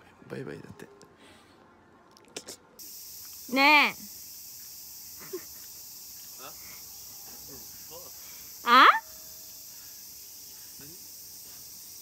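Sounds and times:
high-pitched insect chorus: 2.8 - 12.0.

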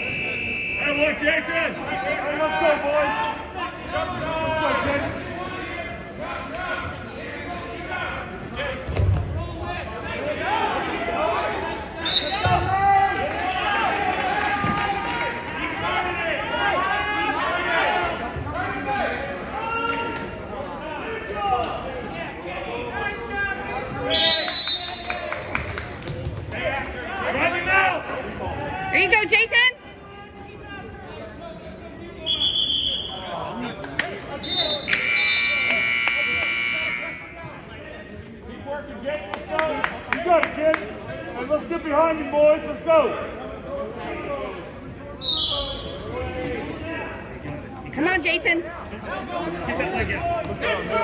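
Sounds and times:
voices in a gym: 0.0 - 51.0
scoreboard buzzer: 34.9 - 37.2.

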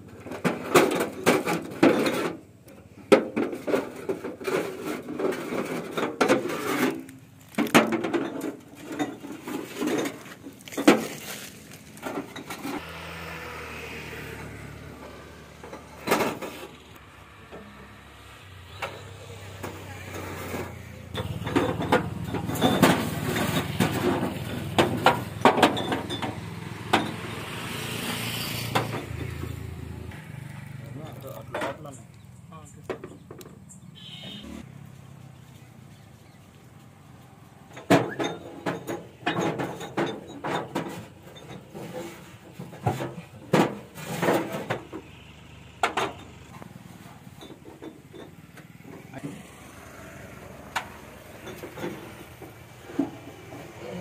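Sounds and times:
glass bottles clinking: 5.8 - 11.4, 21.2 - 27.2, 37.9 - 41.8
vehicle engine idling: 12.8 - 37.8, 44.4 - 54.0
voices: 17.0 - 24.4, 29.0 - 34.4, 47.9 - 54.0.

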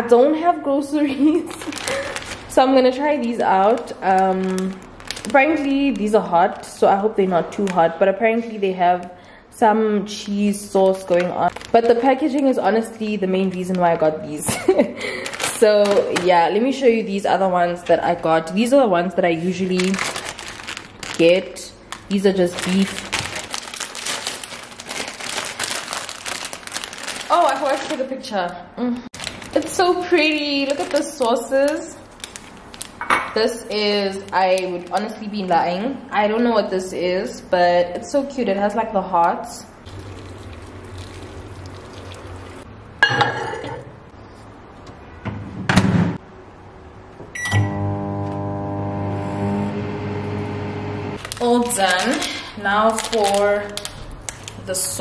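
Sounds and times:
plastic packet crinkling: 1.2 - 6.7, 10.3 - 16.6, 19.3 - 28.4, 29.1 - 35.6, 39.8 - 42.6, 51.2 - 55.0
ceramic bowl clattering: 43.0 - 43.9
microwave oven humming: 47.3 - 51.2
keypad beep: 47.4 - 47.8.

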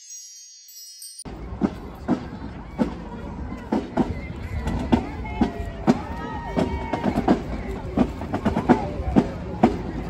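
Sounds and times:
sparkling chime: 0.0 - 1.3
outdoor crowd noise: 0.0 - 10.0.

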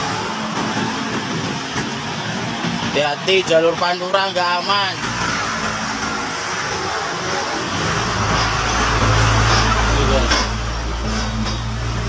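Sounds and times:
highway traffic noise: 0.0 - 12.0
truck engine droning: 0.0 - 12.0.

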